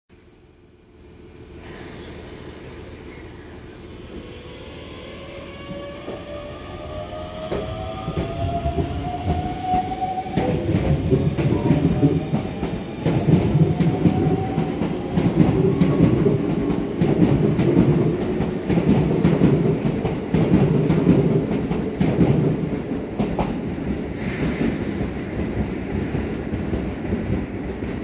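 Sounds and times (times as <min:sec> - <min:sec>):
train rumbling on rails: 0:00.4 - 0:28.0.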